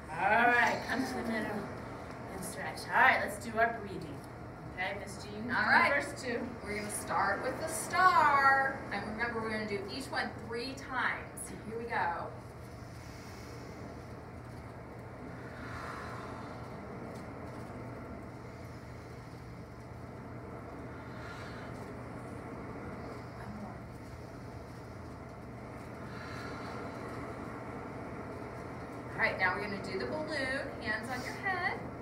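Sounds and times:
low background hum: 0:00.0 - 0:32.0
people breathing deeply: 0:12.7 - 0:14.3, 0:15.3 - 0:17.4, 0:20.8 - 0:25.2, 0:25.9 - 0:28.3.

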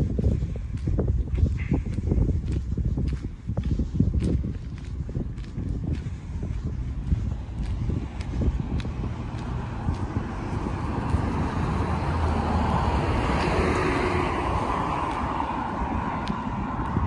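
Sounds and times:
wind rumble on microphone: 0:00.0 - 0:17.0
car driving past: 0:08.6 - 0:17.0.

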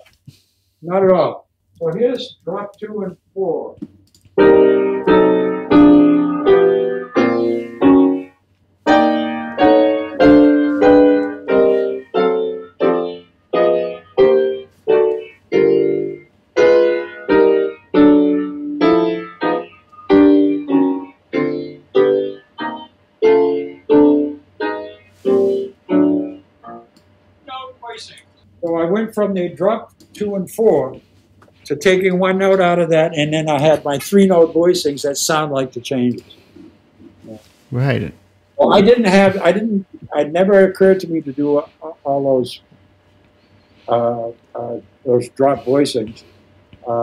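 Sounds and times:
piano block chords: 0:04.4 - 0:28.0.

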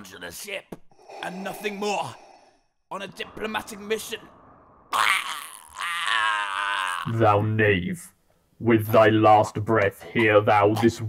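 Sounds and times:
person choking groan: 0:04.9 - 0:07.1.

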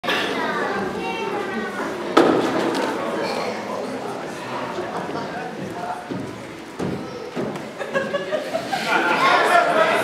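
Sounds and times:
children's voices: 0:00.0 - 0:10.0
people chattering: 0:00.0 - 0:10.0.

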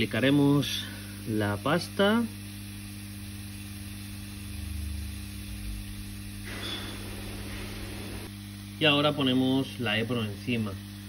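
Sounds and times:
low electrical hum: 0:00.0 - 0:11.0
hiss: 0:06.4 - 0:08.3.

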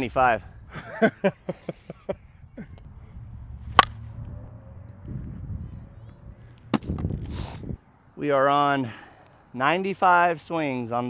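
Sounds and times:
low steady rumble: 0:00.0 - 0:07.8
bat cracking a ball: 0:03.6 - 0:04.1.

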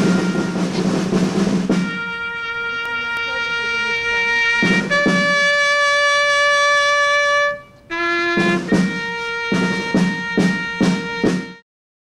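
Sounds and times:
long held brass note: 0:00.0 - 0:01.0, 0:01.7 - 0:11.6
drum beat: 0:00.0 - 0:06.6, 0:08.1 - 0:11.6.

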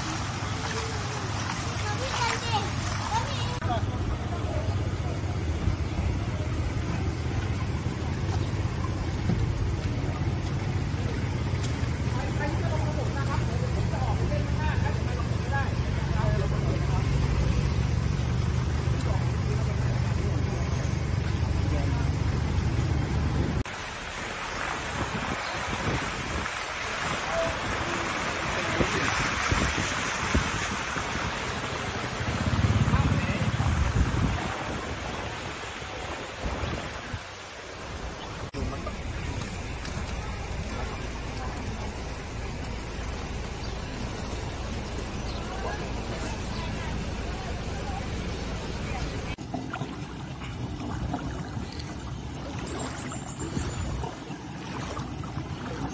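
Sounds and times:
truck engine running: 0:00.0 - 0:24.4, 0:37.8 - 0:49.4
running floodwater hiss: 0:00.0 - 0:49.4
voices: 0:00.0 - 0:55.9
wind on microphone: 0:24.8 - 0:31.6, 0:32.2 - 0:37.4.

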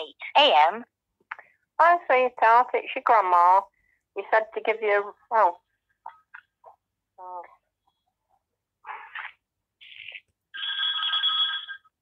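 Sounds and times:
telephone ringing over phone line: 0:10.6 - 0:12.0.

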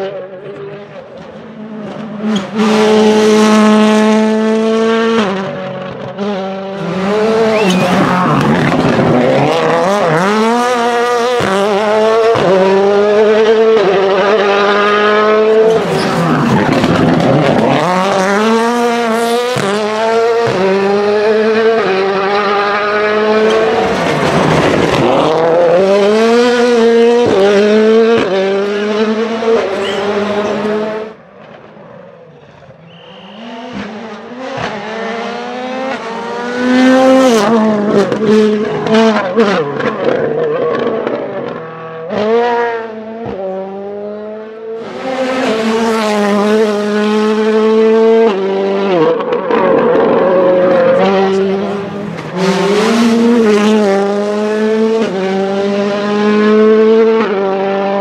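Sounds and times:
rally car engine revving: 0:00.0 - 0:58.0.

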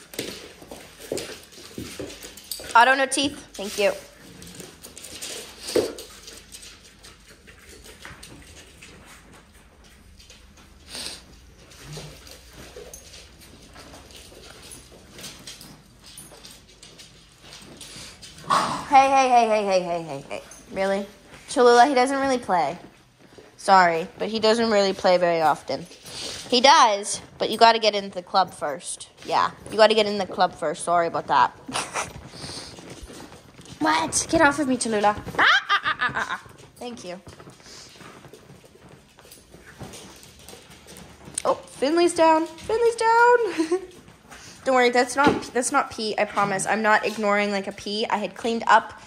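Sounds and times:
dog claws on laminate floor: 0:00.0 - 0:18.8, 0:20.4 - 0:35.5, 0:36.4 - 0:48.1
dog outburst: 0:18.4 - 0:19.0.

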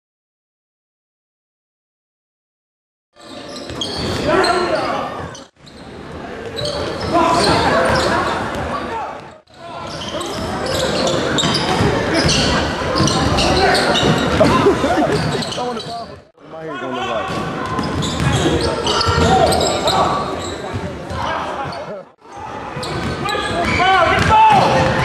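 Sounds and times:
spectators' voices and shouts: 0:06.2 - 0:25.0.

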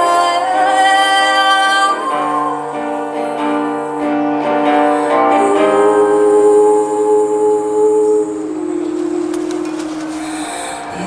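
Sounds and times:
acoustic guitar chord ringing: 0:02.0 - 0:11.0
woman singing long notes: 0:05.0 - 0:11.0.

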